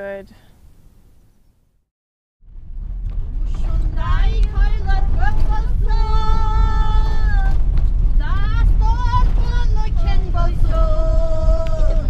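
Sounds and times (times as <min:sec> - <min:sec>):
bus engine and road rumble: 0:02.6 - 0:12.0.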